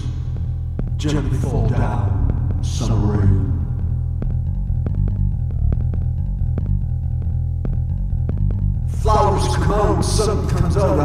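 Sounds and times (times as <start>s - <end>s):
deep synthesizer bass line: 0.0s - 11.0s.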